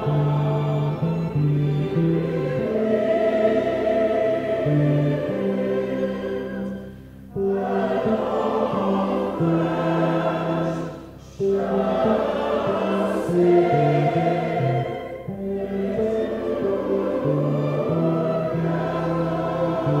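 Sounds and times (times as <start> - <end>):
large mixed choir singing: 0.0 - 20.0.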